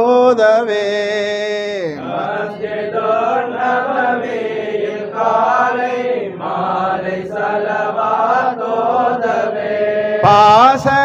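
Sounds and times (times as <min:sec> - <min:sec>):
men chanting devotional song: 0:00.0 - 0:11.0.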